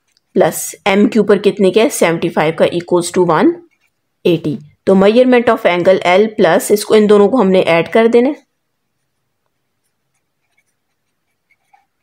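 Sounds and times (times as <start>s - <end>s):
pen writing on paper: 9.8s - 12.0s.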